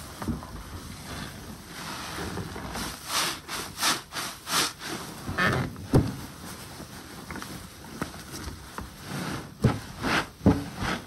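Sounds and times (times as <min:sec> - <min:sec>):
sponge squishing in soapy water: 0:01.1 - 0:05.4
loud sponge squelches: 0:01.8 - 0:05.6.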